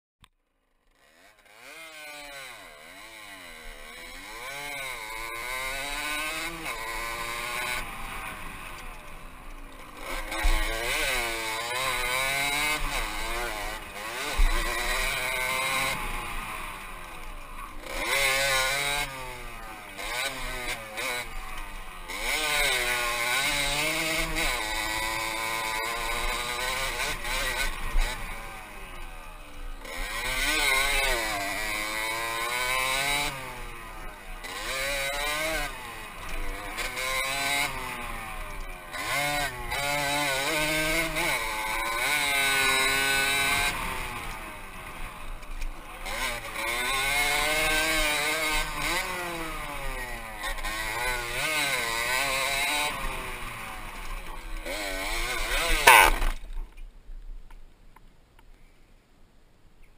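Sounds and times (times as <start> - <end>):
two-stroke motorcycle engine revving: 0.8 - 56.8.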